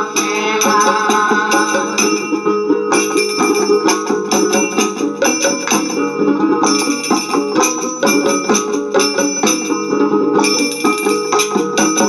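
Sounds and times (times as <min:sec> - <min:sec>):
bell-like percussion strokes: 0:00.0 - 0:12.0
sustained pitched accompaniment: 0:00.0 - 0:12.0.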